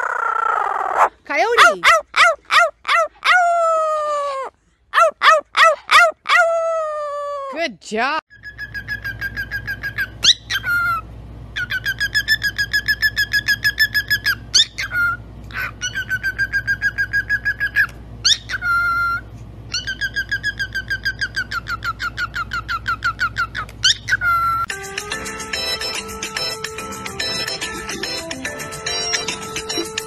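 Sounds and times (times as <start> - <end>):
cockatiel warbling: 0.0 - 7.1, 8.4 - 24.7
steady low hum: 8.3 - 30.0.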